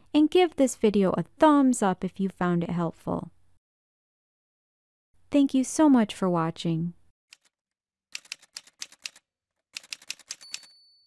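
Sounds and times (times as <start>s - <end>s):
typewriter key clacks: 8.2s - 9.2s, 9.8s - 10.7s
typewriter bell ding: 10.2s - 11.0s.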